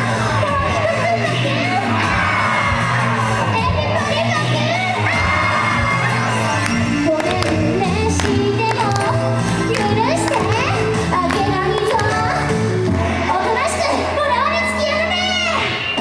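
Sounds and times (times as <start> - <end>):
crowd shouting and cheering: 0.0 - 16.0
upbeat backing track over loudspeakers: 0.0 - 16.0.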